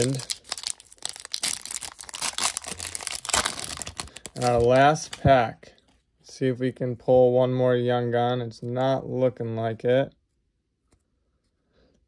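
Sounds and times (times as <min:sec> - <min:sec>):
foil wrapper crinkling: 0:00.0 - 0:05.3.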